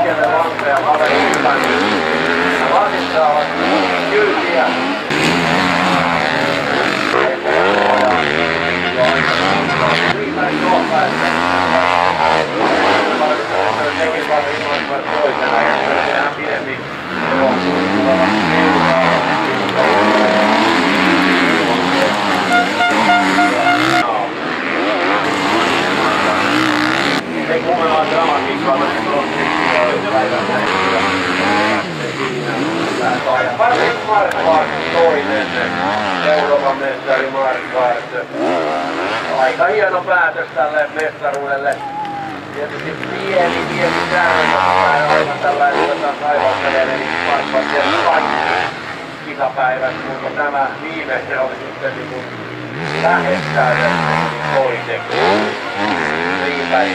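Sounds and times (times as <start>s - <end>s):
motorcycle engines revving: 0.0s - 56.9s.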